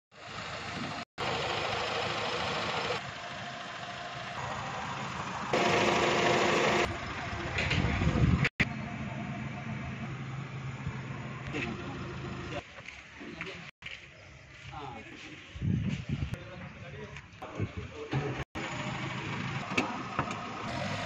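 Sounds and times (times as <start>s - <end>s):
car engine idling: 0.2s - 12.6s.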